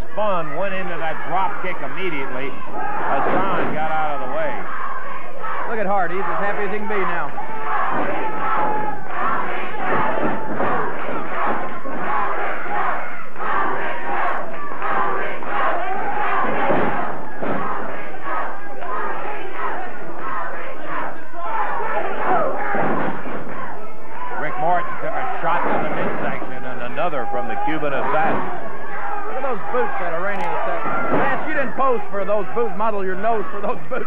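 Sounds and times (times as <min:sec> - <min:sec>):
crowd yelling and shouting: 0:00.0 - 0:34.0
dull thuds of bodies: 0:06.9 - 0:20.5, 0:21.6 - 0:23.8, 0:25.2 - 0:26.4, 0:27.6 - 0:29.8, 0:30.7 - 0:31.8.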